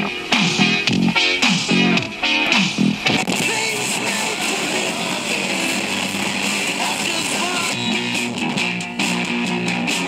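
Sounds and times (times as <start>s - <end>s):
guitar music through small speakers: 0.0s - 10.0s.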